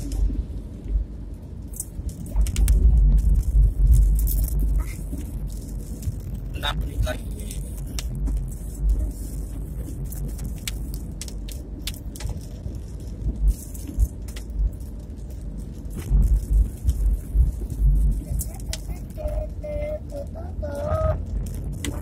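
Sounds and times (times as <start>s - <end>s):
road rumble: 0.0s - 22.0s
wind buffeting microphone: 0.0s - 22.0s.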